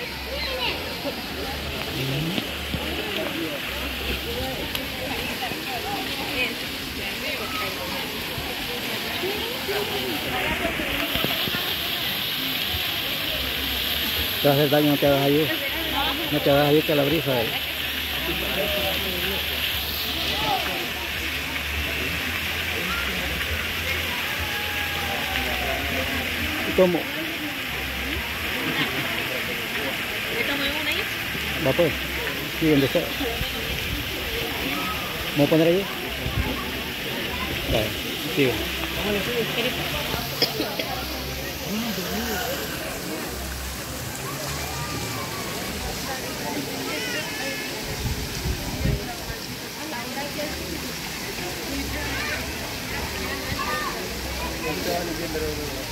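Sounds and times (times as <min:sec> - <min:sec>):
fountain water splashing: 0:00.0 - 0:55.9
people talking: 0:00.0 - 0:55.9
people's voices: 0:00.0 - 0:55.9.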